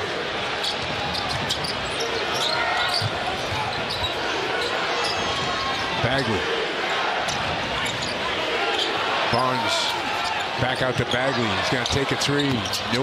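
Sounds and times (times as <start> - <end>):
sneaker squeaks: 0.6 - 5.8, 12.4 - 13.0.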